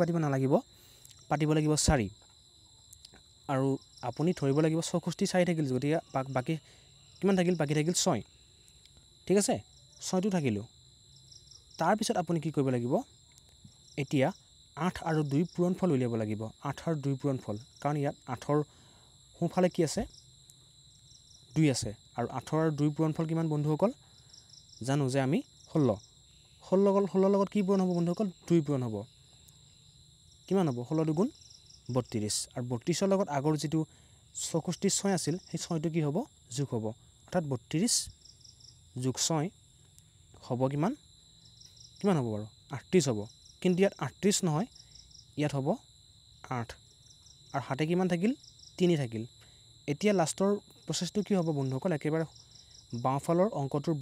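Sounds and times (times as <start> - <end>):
man speaking: 0.0 - 2.2, 3.5 - 8.2, 9.3 - 10.7, 11.8 - 13.1, 14.0 - 18.7, 19.4 - 20.1, 21.5 - 24.0, 24.8 - 26.0, 26.6 - 29.1, 30.5 - 31.3, 31.9 - 38.1, 39.0 - 39.5, 40.4 - 41.0, 42.0 - 44.7, 45.4 - 45.8, 46.4 - 46.8, 47.5 - 49.3, 49.9 - 52.3, 52.9 - 54.0
crickets chirring: 0.0 - 54.0.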